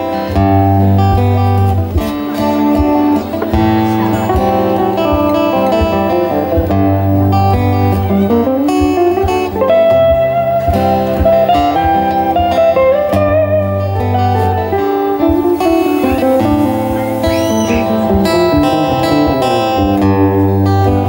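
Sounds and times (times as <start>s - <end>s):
acoustic and electric guitars: 0.0s - 21.0s.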